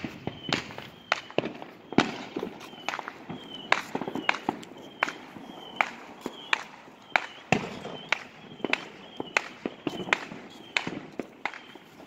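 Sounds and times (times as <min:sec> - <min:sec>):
fireworks and firecrackers popping: 0:00.0 - 0:12.0.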